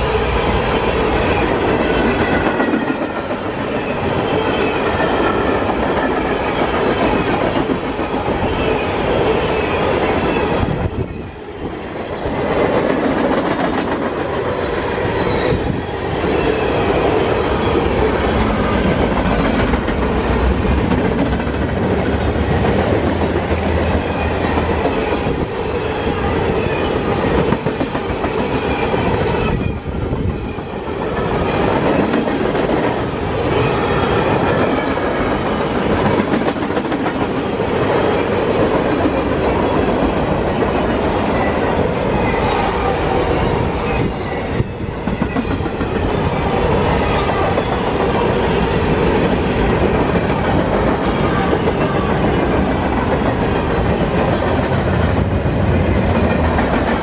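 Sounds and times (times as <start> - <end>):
train wheels on rail: 0.0 - 57.0.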